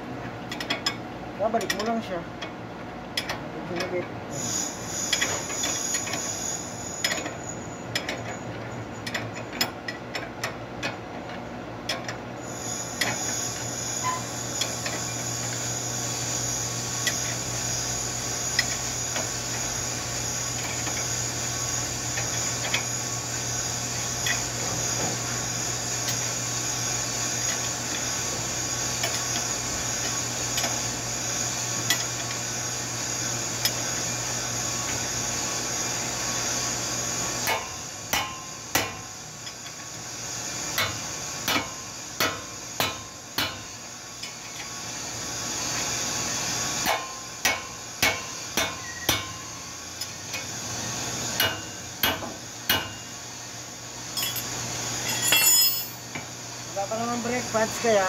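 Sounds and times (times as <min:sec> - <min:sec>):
hammer striking metal: 0:37.4 - 0:39.0, 0:41.5 - 0:43.6, 0:46.8 - 0:49.4, 0:51.4 - 0:53.0.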